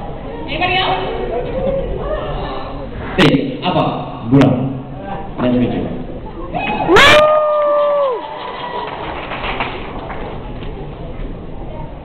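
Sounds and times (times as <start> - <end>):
audience murmur: 0.0 - 3.2, 8.2 - 12.0
person whooping: 6.5 - 8.8.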